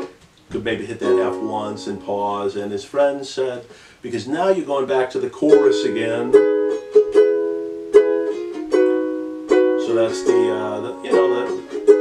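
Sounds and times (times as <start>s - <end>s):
ukulele strums: 0.0s - 3.6s, 4.5s - 12.0s.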